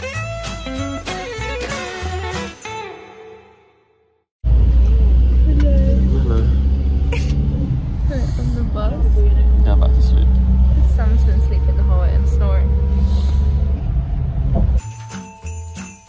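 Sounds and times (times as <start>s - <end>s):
minibus engine and road noise: 4.4s - 14.8s.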